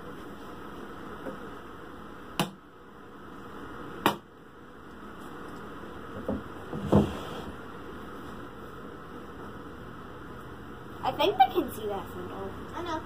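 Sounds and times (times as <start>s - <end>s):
steady room noise hiss: 0.0s - 13.0s.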